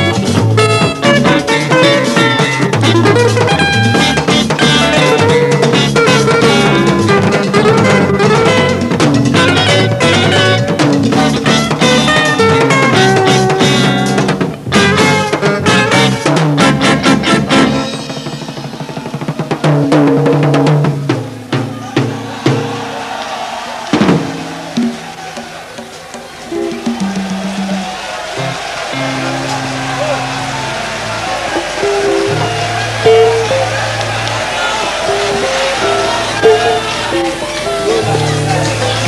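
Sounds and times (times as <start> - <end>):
rumba band music: 0.0 - 39.0
snare drum rolls: 0.0 - 39.0.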